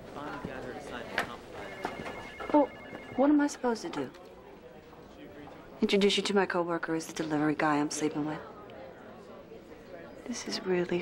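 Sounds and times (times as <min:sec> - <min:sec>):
telephone ringing: 0:01.6 - 0:04.2.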